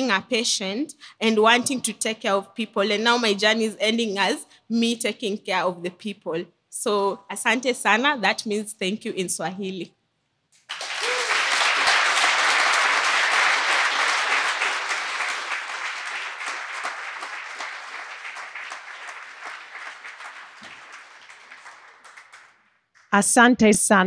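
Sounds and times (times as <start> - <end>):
audience applauding: 10.6 - 23.1.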